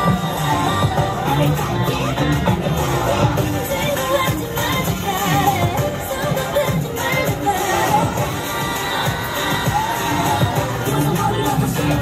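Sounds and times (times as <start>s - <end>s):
crowd cheering and shouting: 0.0s - 12.0s
dance pop music on sound system: 0.0s - 12.0s.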